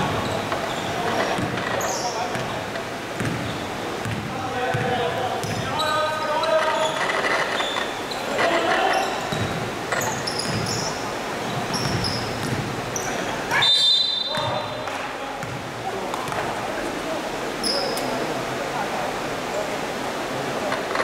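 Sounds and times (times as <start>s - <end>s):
sneakers squeaking on court: 0.0s - 2.6s, 3.2s - 13.3s, 14.3s - 14.8s, 15.4s - 15.6s
basketball bouncing: 1.3s - 1.7s, 2.3s - 2.5s, 3.2s - 5.7s, 9.3s - 10.8s, 11.6s - 12.7s, 15.4s - 15.6s
referee's whistle: 13.5s - 14.8s.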